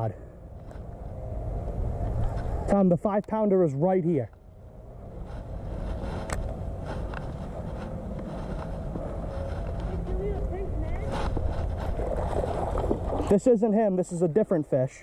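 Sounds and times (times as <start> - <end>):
wind buffeting microphone: 4.5 - 13.4.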